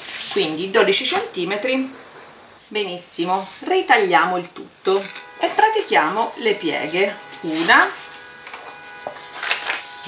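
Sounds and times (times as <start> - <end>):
paper crackling: 0.0 - 0.6, 6.6 - 10.0
paper rustling: 0.0 - 1.3, 6.6 - 10.0.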